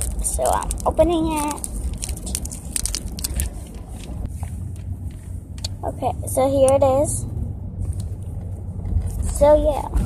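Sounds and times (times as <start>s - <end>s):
plastic packet crinkling: 0.0s - 4.2s.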